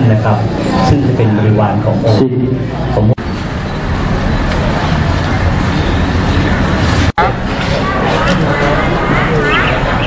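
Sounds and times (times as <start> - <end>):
road traffic: 2.6 - 10.0
faint voices: 4.4 - 10.0.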